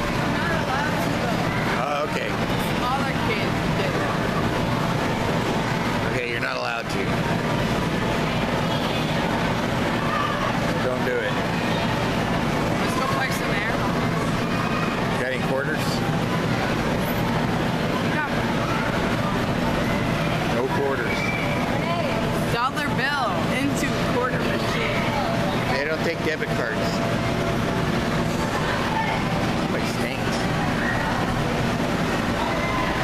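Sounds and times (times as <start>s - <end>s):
electric air blowers droning: 0.0s - 33.0s.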